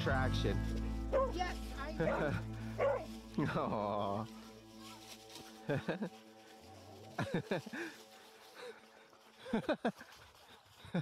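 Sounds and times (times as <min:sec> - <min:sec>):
person laughing: 0:02.0 - 0:02.5, 0:03.4 - 0:04.2, 0:05.6 - 0:06.2, 0:07.2 - 0:08.0, 0:09.4 - 0:10.1.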